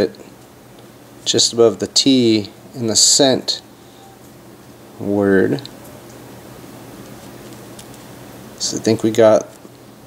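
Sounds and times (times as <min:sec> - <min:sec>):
faint hum: 0:00.0 - 0:10.0
steady low hiss: 0:00.0 - 0:10.0.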